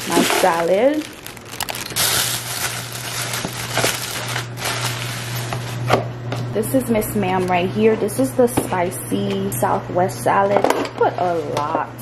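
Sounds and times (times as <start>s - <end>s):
plastic bag crinkling: 0.0s - 5.6s
plastic container pulled out: 0.4s - 4.4s.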